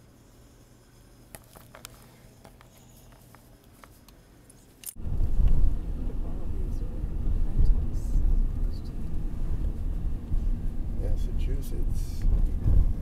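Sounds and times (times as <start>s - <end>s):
wind buffeting microphone: 5.0s - 13.0s.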